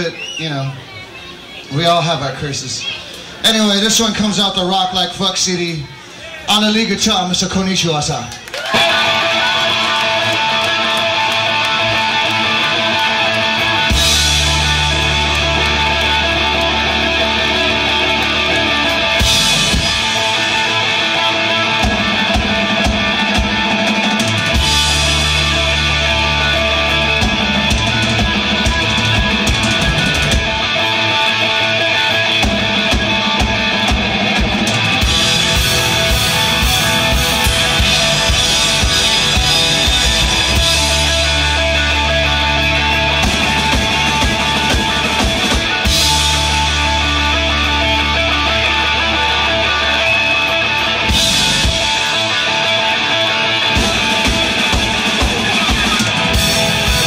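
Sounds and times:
rock band playing live: 3.0s - 57.0s.

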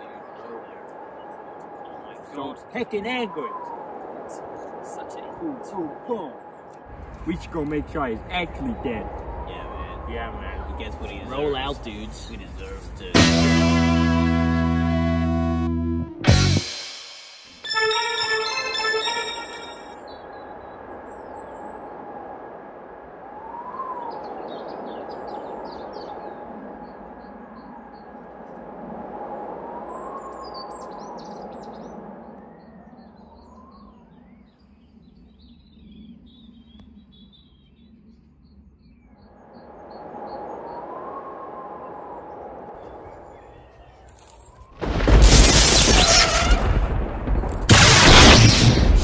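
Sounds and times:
distant siren wailing: 0.0s - 12.6s, 17.6s - 34.0s
small birds chirping: 29.9s - 41.2s.

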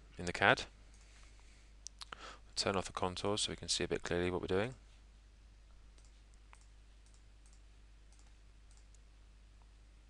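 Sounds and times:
faint low hum: 0.0s - 10.0s
computer mouse clicks: 6.0s - 9.0s.

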